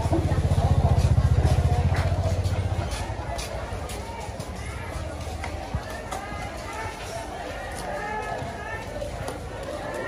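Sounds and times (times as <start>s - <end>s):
motor scooter passing: 0.0s - 5.1s.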